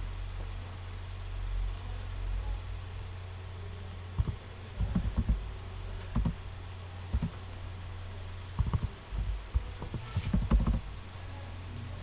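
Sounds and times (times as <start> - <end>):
steady low hum: 0.0 - 12.0
keyboard keystrokes: 4.2 - 5.4, 6.1 - 6.4, 7.1 - 7.6, 8.6 - 8.9, 9.5 - 10.8.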